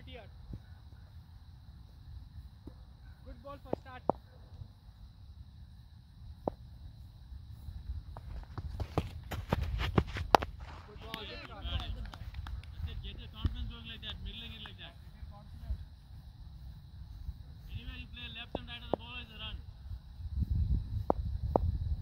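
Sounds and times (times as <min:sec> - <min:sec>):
wind rumbling on microphone: 0:01.8 - 0:22.0
footsteps thudding on turf: 0:08.1 - 0:11.2
people's voices: 0:10.6 - 0:16.0.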